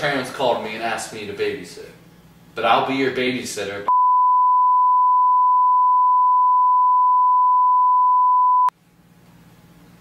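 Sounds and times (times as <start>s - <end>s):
censor bleep: 3.9s - 8.7s.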